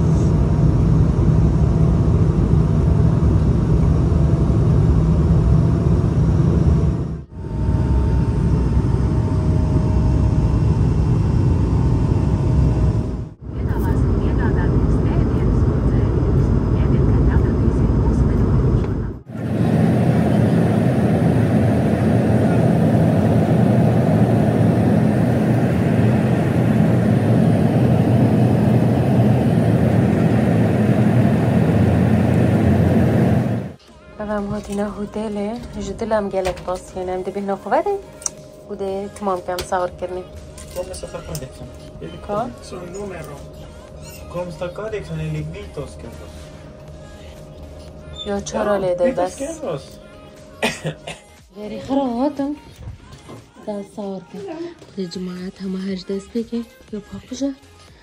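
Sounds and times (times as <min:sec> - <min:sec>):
airliner cabin engine and airflow rush: 0:00.0 - 0:33.8.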